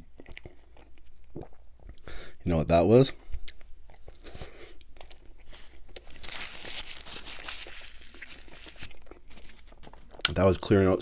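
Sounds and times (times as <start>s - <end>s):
soft chewing: 0.0s - 2.5s, 3.1s - 10.4s
paper napkin rustling: 5.5s - 10.1s.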